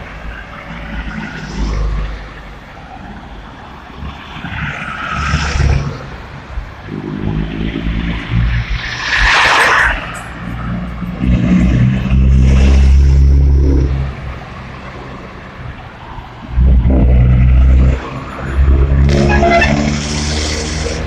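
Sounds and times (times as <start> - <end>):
cars driving past: 0.0 - 21.0.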